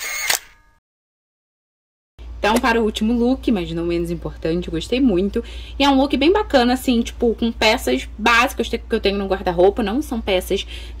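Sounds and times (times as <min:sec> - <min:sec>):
camera shutter clicks: 0:00.0 - 0:00.6.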